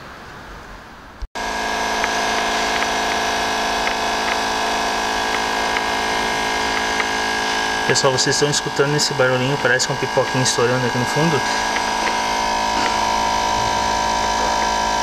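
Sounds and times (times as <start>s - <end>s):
smoke machine pump running: 1.4s - 15.0s.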